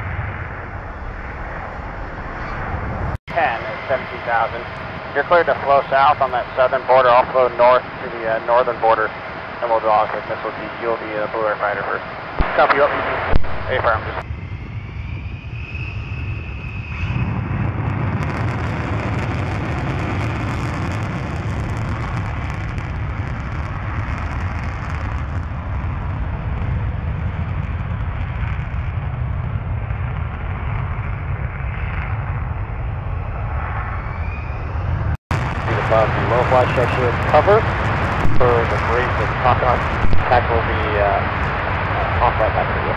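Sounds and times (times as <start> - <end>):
high jet whine: 0.0 - 42.9
jet engines roaring with crackle: 0.0 - 42.9.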